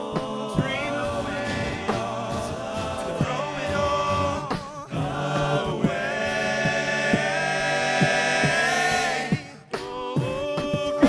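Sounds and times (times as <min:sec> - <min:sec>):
male a cappella group singing: 0:00.0 - 0:11.0
vocal percussion hits: 0:00.0 - 0:11.0.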